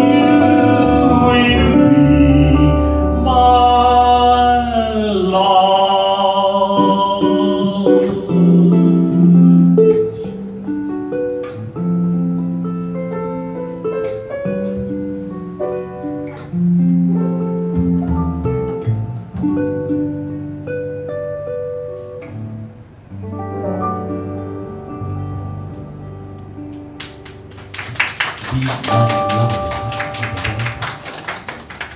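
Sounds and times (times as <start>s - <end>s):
guitar plucked notes and chords: 0.0s - 5.0s, 6.8s - 27.5s, 28.8s - 31.1s
upright bass plucked: 0.0s - 5.3s, 17.7s - 20.8s, 28.7s - 30.8s
piano: 0.0s - 31.9s.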